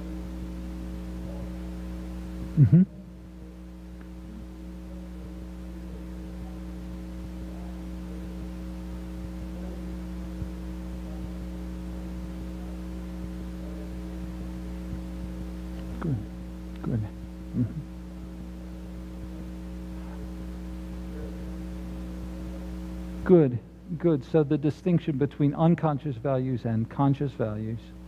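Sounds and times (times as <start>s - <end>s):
electrical mains hum: 0.0s - 28.0s
faint distant speech: 0.1s - 23.5s.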